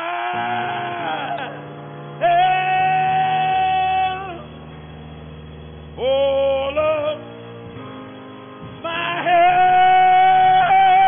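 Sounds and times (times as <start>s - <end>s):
person singing high note: 0.0s - 4.5s
instrumental chord: 1.5s - 11.0s.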